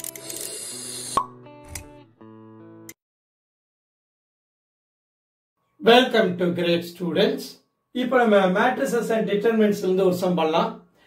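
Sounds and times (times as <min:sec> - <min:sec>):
pop sound effect: 0:01.1 - 0:01.4.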